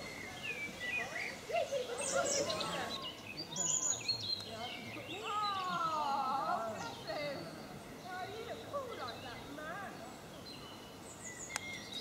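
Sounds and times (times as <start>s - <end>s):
songbirds chirping and trilling: 0.0s - 12.0s.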